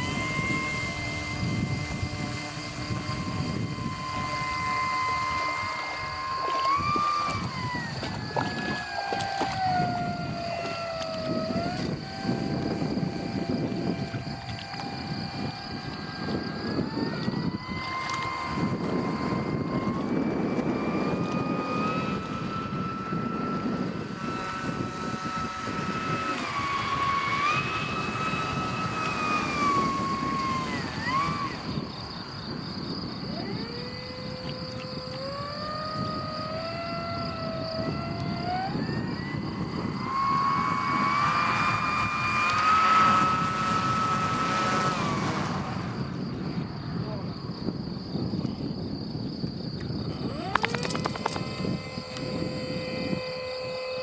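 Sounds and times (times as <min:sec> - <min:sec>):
wind and water rushing: 0:00.0 - 0:48.0
model plane propeller motor whining: 0:00.0 - 0:54.0.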